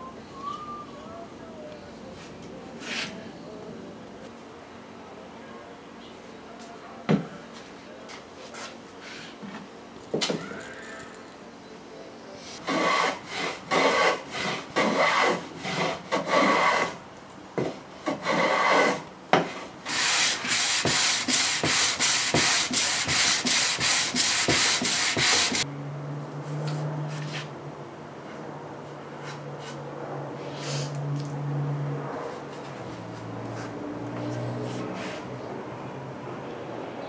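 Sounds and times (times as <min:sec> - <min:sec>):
hand plane shaving wood: 0:12.6 - 0:17.0, 0:18.0 - 0:19.0, 0:19.9 - 0:25.6.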